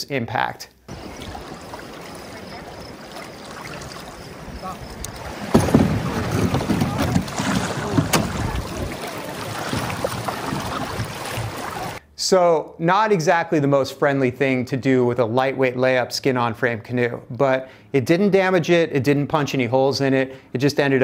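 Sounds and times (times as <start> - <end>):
boats crashing into rocks: 0.9 - 12.0
hulls scraping over rock: 0.9 - 12.0
rushing river water: 0.9 - 12.0.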